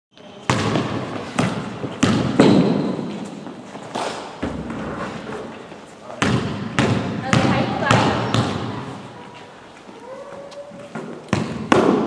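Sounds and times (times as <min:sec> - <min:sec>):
basketball bouncing on hall floor: 0:00.4 - 0:05.4, 0:06.1 - 0:09.0, 0:10.0 - 0:12.0.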